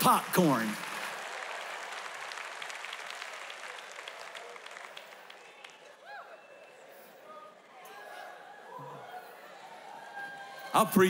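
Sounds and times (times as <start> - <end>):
crowd applauding: 0.0 - 11.0.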